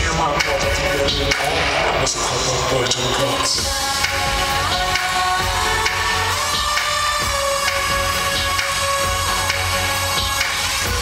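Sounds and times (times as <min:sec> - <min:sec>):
loud pop concert music: 0:00.0 - 0:11.0
steady bass beat: 0:00.0 - 0:11.0.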